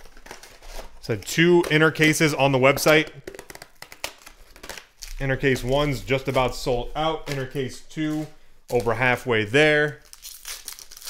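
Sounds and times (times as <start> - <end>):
rustling of card packs: 0.0 - 11.0.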